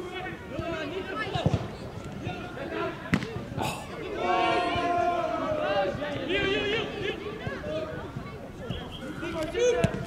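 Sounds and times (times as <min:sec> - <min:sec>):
players shouting: 0:02.2 - 0:08.0.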